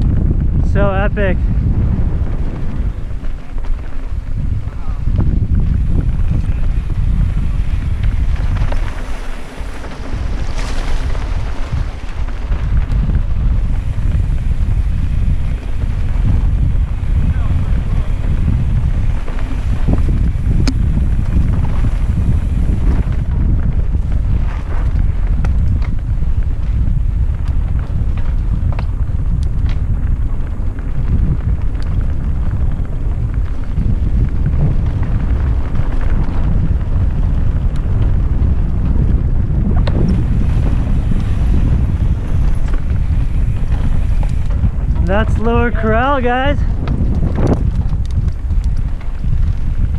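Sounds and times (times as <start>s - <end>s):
bike clicks and rattles: 0.0s - 0.8s, 1.4s - 49.9s
tyre noise on dirt: 0.0s - 49.9s
wind buffeting microphone: 0.0s - 49.9s.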